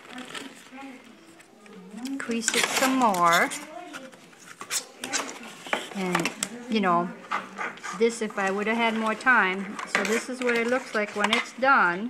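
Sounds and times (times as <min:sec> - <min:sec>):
ruler scraping and tapping card: 0:04.4 - 0:06.5.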